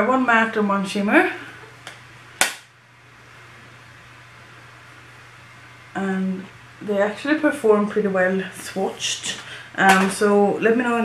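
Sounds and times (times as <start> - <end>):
faint low hum: 0.0 - 11.0
sharp click: 1.9 - 2.7.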